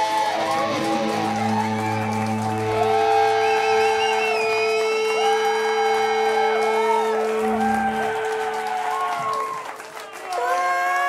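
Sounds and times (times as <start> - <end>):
guitars sustained notes: 0.0 - 9.5.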